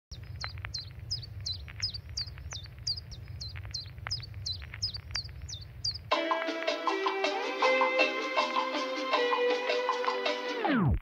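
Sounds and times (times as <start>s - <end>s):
bird chirping: 0.1s - 6.1s
low rumble: 0.1s - 6.1s.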